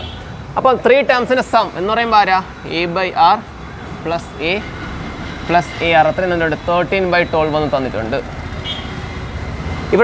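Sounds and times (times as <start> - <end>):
marker squeak: 8.6 - 9.0.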